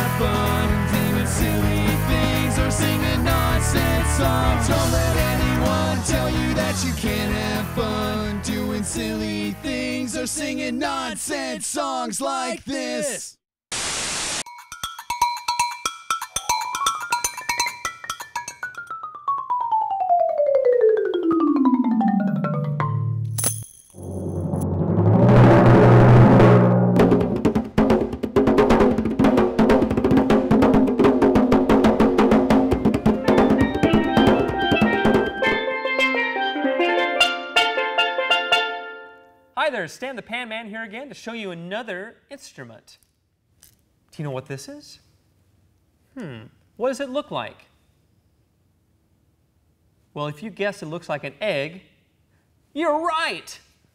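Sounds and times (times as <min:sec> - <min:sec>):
mallet percussion notes: 0:14.6 - 0:23.7, 0:32.7 - 0:39.2
marimba-like mallet notes: 0:14.8 - 0:23.3, 0:32.8 - 0:39.0
fast hand drumming: 0:27.0 - 0:35.5.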